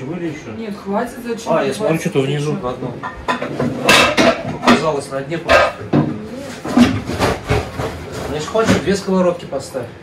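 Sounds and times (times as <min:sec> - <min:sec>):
frying pans knocking together: 0:03.0 - 0:09.0.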